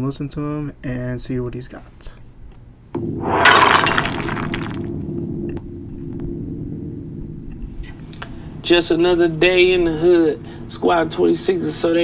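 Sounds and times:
crashing shattering noise: 3.2 - 5.1
low sustained tone: 3.2 - 8.6.

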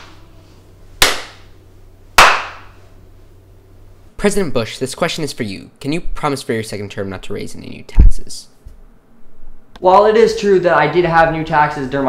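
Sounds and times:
hand claps with echo: 1.0 - 1.4, 2.2 - 2.7.

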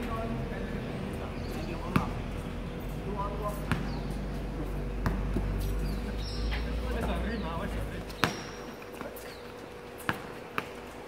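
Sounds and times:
basketball bouncing on hard court: 3.6 - 4.2, 5.0 - 5.5, 8.1 - 9.1, 10.0 - 10.9.

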